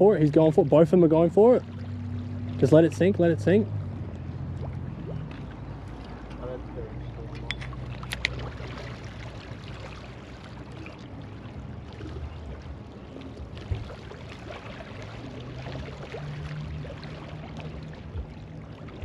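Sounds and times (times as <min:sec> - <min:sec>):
open water washing at shoreline: 0:00.0 - 0:19.0.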